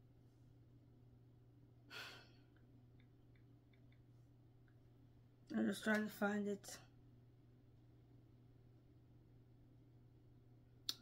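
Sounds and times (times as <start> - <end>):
faint low hum: 0.0 - 11.0
person sighing: 1.9 - 2.5.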